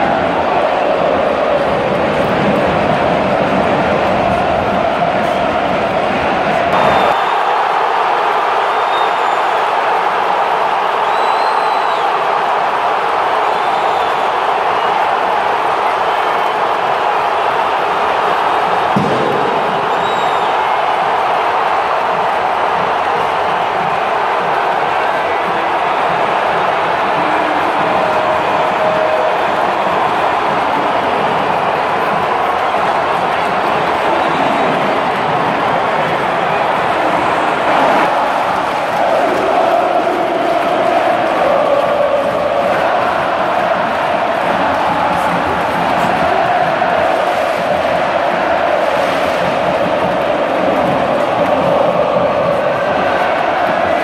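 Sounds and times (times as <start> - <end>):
stadium crowd singing a chant: 0.0 - 54.0.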